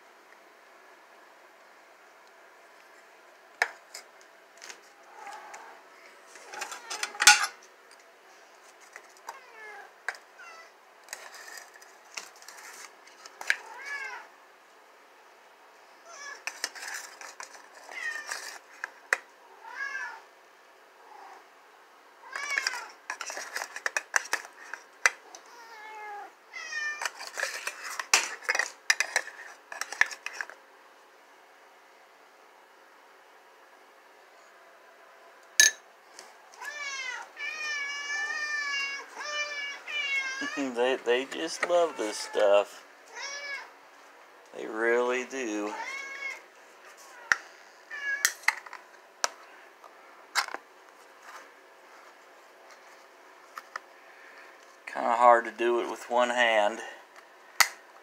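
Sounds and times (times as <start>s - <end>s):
cats meowing: 13.5s - 14.3s, 17.8s - 18.6s, 19.5s - 20.2s, 25.3s - 27.2s, 36.6s - 43.8s, 45.6s - 48.3s
spoon clinking on dish: 35.6s - 35.8s.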